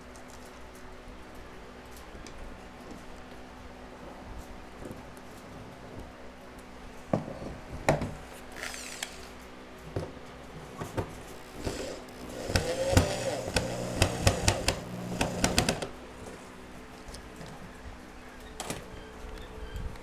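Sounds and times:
power drill driving a screw: 8.5 - 9.4, 11.4 - 15.9
clicks over drill motor: 8.6 - 9.4, 11.4 - 15.9.

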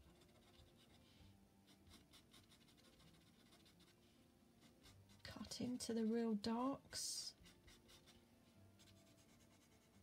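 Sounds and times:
pencil scratching on paper: 0.0 - 5.6, 7.3 - 10.0.

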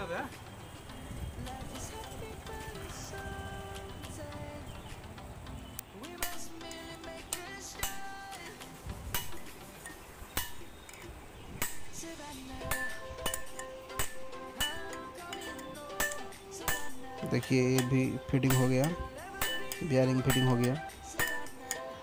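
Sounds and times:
hammer striking metal chisel: 6.2 - 8.2, 9.1 - 11.0, 11.6 - 22.0.

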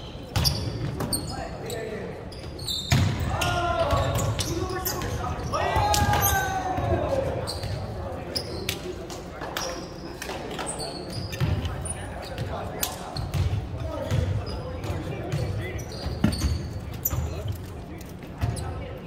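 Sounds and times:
sneakers squeaking: 0.0 - 19.0.

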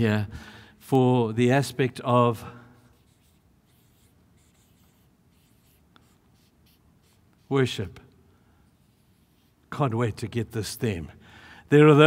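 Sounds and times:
marker pen writing on board: 2.8 - 7.5.

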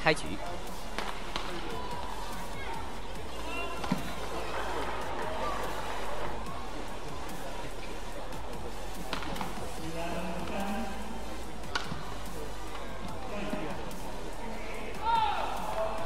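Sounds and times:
arena noise: 0.0 - 16.0
background music: 0.0 - 16.0
rackets hitting shuttlecock: 0.9 - 2.1, 3.8 - 4.1, 9.0 - 9.5, 11.7 - 12.0.

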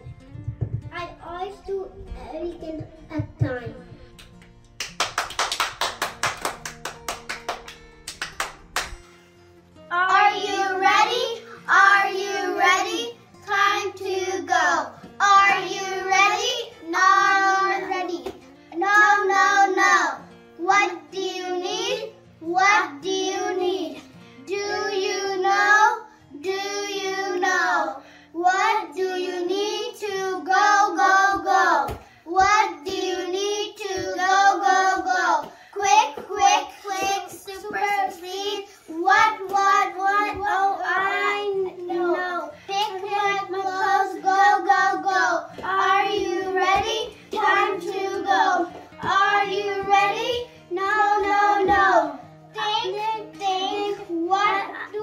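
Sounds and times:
hands clapping: 4.2 - 9.1
children singing: 18.8 - 55.0.

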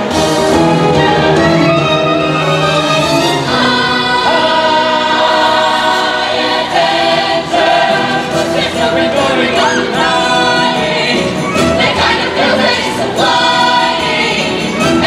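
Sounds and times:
orchestral accompaniment: 0.0 - 15.0
chorus of voices singing: 1.7 - 15.0.

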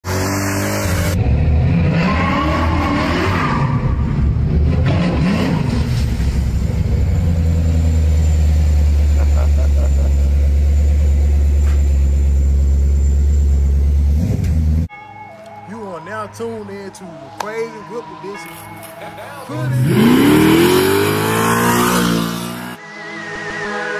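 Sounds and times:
car engine revving: 0.0 - 14.9, 19.5 - 22.8.

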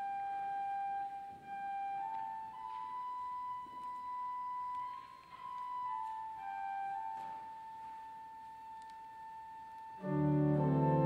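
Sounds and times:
church organ playing: 9.5 - 11.0.

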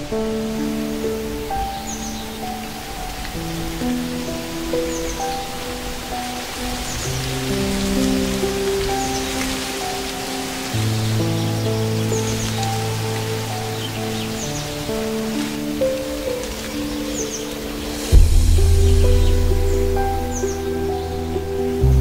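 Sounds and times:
rain-like hiss: 0.0 - 22.0
slow ambient music: 0.0 - 22.0
deep bass note: 18.1 - 21.2.

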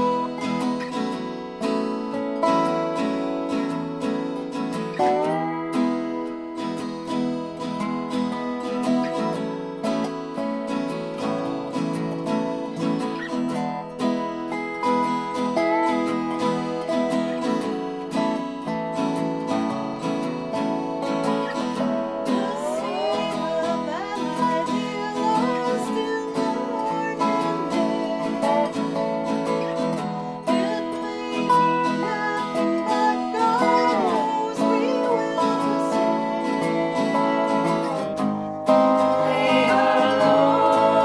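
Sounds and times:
slide resonator guitar: 0.0 - 41.0
strummed acoustic guitar: 0.0 - 41.0.

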